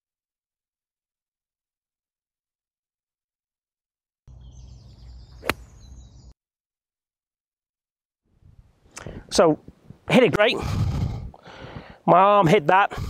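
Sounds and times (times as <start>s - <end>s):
golf iron striking ball: 5.3s - 6.1s.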